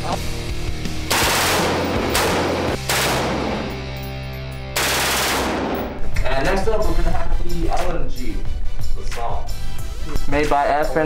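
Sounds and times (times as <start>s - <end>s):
background music: 0.0s - 11.0s
automatic rifle fire bursts: 1.1s - 3.8s, 4.8s - 6.0s.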